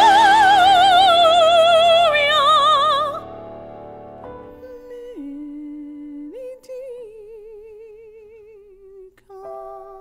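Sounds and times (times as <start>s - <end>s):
woman singing with vibrato: 0.0s - 3.3s, 4.5s - 10.0s.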